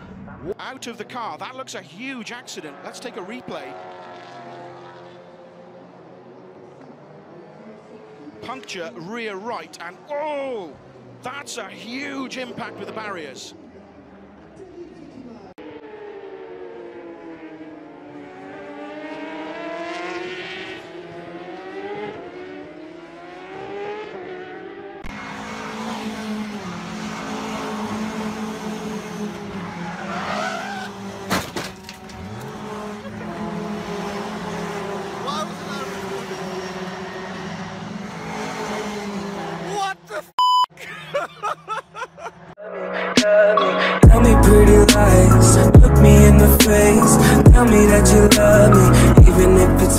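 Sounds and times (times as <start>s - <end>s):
race cars passing at speed: 0.0s - 40.1s, 43.4s - 49.9s
steady engine drone: 44.0s - 49.9s.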